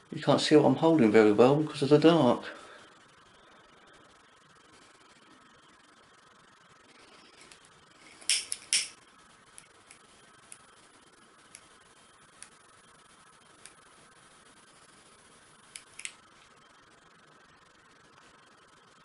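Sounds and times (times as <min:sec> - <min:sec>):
handling clicks: 0:08.2 - 0:09.0
lighter strikes: 0:08.2 - 0:10.6, 0:15.8 - 0:16.2.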